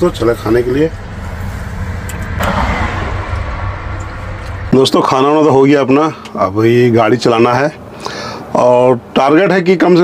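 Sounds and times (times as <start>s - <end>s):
even rushing noise: 0.6s - 5.8s.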